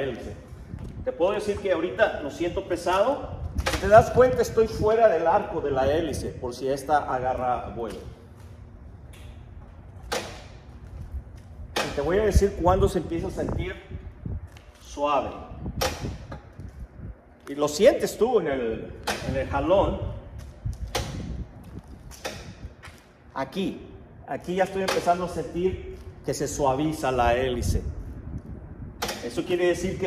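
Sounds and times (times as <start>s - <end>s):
low rumbling handling noise: 0.0s - 23.3s
sharp click: 29.0s - 29.4s.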